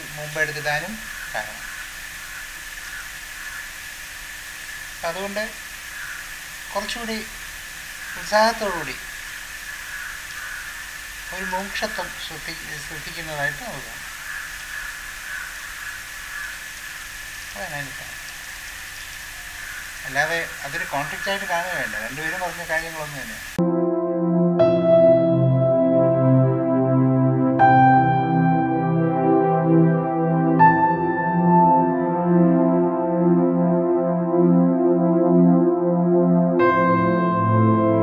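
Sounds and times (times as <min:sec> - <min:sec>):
background hiss: 0:00.0 - 0:23.6.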